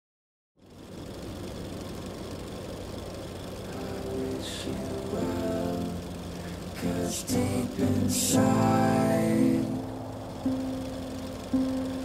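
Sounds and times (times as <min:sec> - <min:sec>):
film projector rattling whir: 0:00.6 - 0:07.9
song with held notes: 0:04.8 - 0:12.0.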